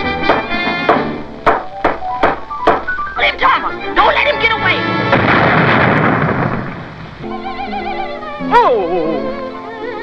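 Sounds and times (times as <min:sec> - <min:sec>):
cartoon explosion burst: 0:05.0 - 0:07.1.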